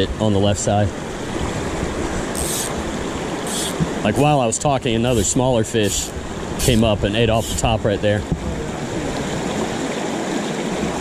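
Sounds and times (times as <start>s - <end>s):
brook running over rocks: 1.2s - 11.0s.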